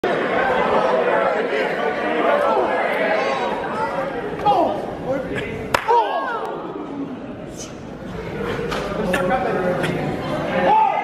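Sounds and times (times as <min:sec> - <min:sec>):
crowd chatter in echoing hall: 0:00.0 - 0:11.0.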